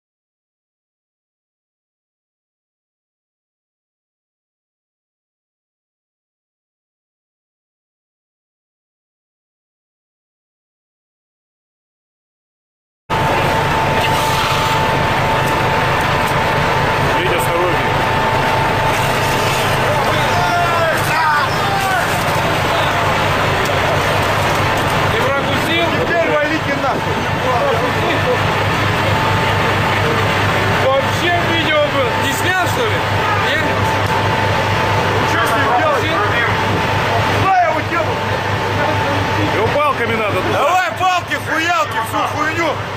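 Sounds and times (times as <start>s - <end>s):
boat machinery drone: 13.1s - 42.9s
thin whine: 13.1s - 42.9s.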